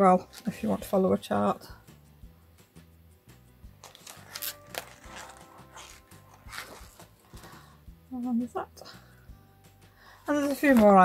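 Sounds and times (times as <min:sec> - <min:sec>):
quiet background music: 0:00.0 - 0:11.0
paper pages rustling: 0:03.8 - 0:07.6, 0:10.3 - 0:11.0.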